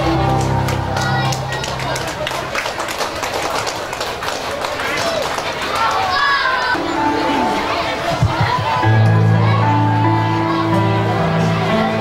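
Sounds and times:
scattered applause: 0.0 - 9.8
crowd voices: 0.0 - 12.0.

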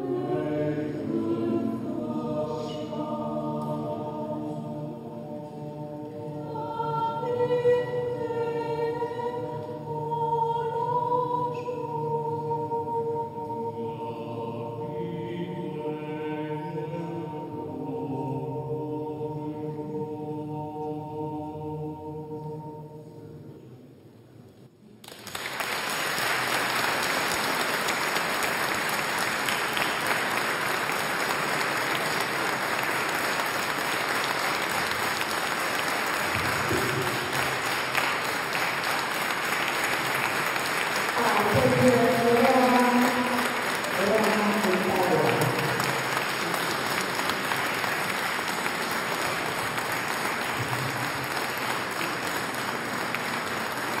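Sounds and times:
choir singing: 0.0 - 24.0, 26.8 - 54.0
audience applauding: 25.0 - 54.0.

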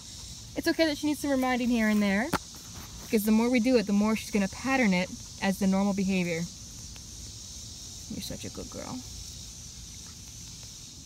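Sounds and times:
cicadas droning: 0.0 - 11.0
faint ticks: 6.8 - 7.4.

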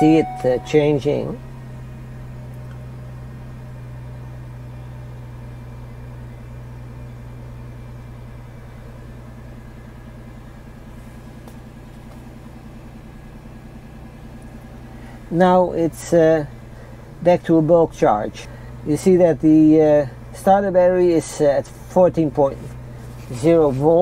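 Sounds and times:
van engine idling: 0.0 - 24.0.

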